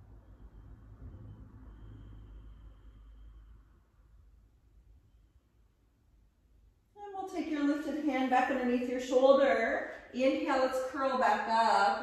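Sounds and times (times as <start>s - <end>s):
low hum: 0.0s - 7.0s.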